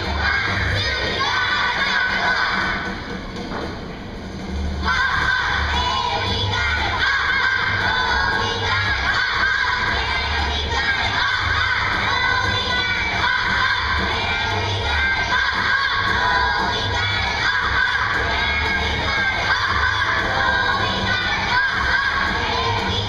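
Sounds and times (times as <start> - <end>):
children's choir singing: 0.0 - 3.3, 4.8 - 23.0.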